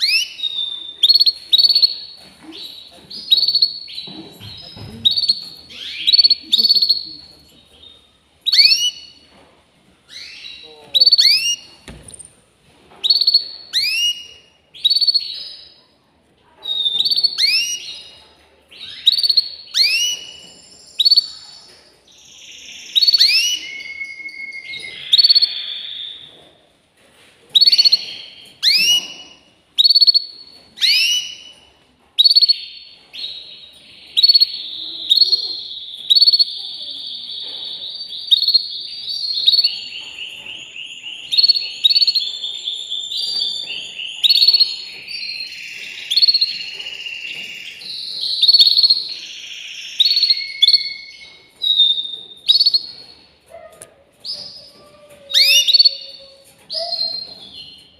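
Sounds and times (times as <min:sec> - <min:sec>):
canary singing: 0:00.0 - 0:09.3, 0:10.1 - 0:12.2, 0:13.0 - 0:15.8, 0:16.6 - 0:26.4, 0:27.6 - 0:57.9.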